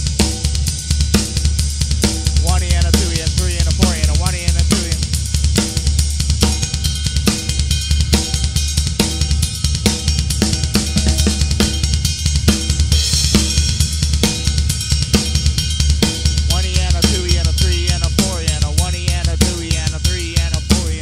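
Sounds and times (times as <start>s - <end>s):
drum kit swing groove: 0.0s - 21.0s.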